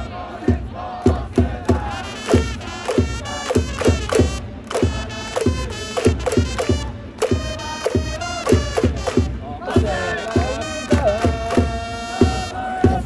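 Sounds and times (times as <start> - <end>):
crowd chanting in unison: 0.0 - 13.0
steady drum beat: 0.0 - 13.0
trumpets: 1.7 - 13.0.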